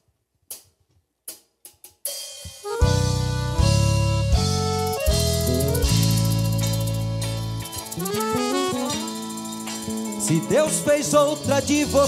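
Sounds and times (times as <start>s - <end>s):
band playing: 2.6s - 12.0s
percussion clicks: 4.8s - 12.0s.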